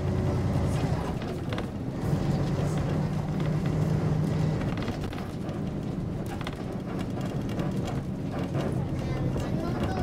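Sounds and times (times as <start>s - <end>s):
bus engine humming: 0.0s - 10.0s.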